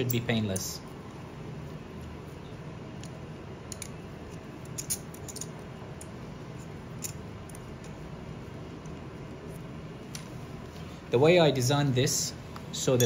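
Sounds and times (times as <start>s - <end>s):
steady low hum: 0.0s - 13.0s
metallic clicks and scrapes: 3.0s - 8.0s.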